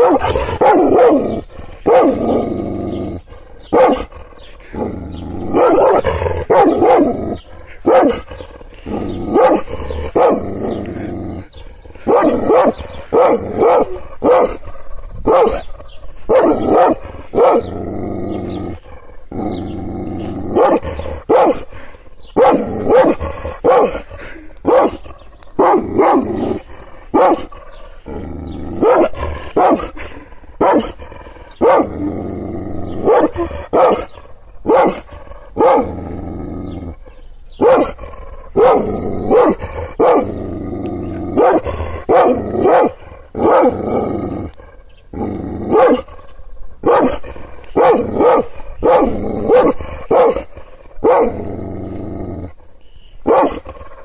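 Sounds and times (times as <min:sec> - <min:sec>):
dog barking deeply: 0:00.0 - 0:37.0, 0:37.6 - 0:52.6, 0:53.2 - 0:54.0.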